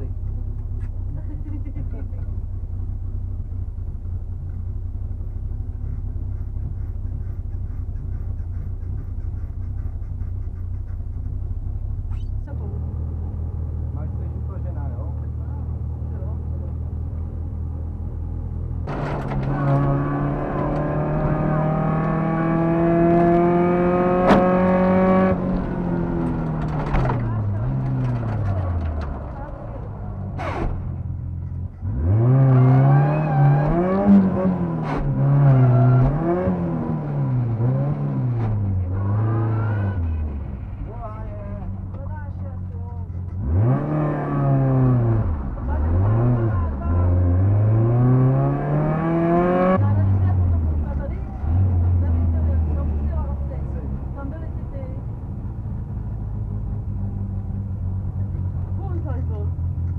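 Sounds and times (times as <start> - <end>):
car engine idling and revving: 0.0 - 59.9.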